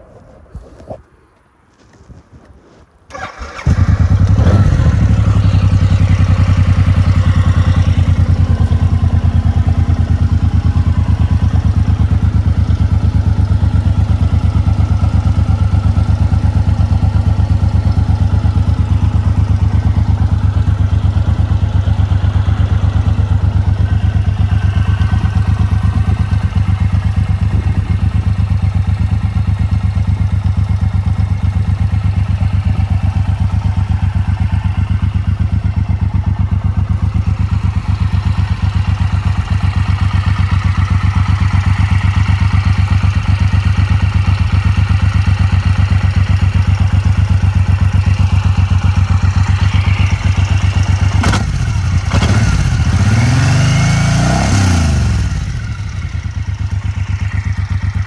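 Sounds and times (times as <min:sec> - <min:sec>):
motorcycle engine idling: 0:03.1 - 0:58.0.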